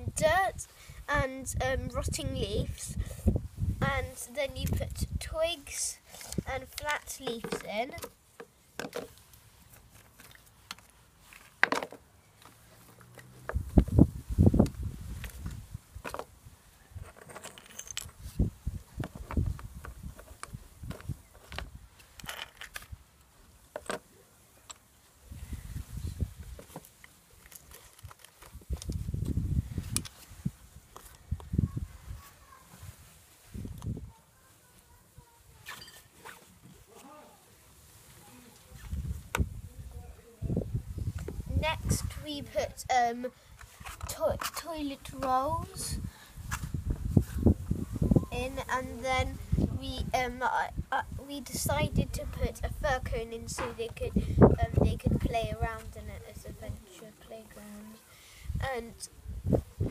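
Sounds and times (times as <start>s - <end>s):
handling rustle: 6.0s - 13.7s, 25.8s - 39.6s, 43.5s - 45.4s.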